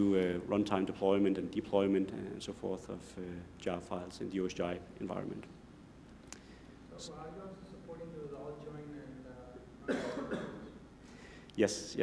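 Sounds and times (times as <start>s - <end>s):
person coughing: 9.8s - 10.8s.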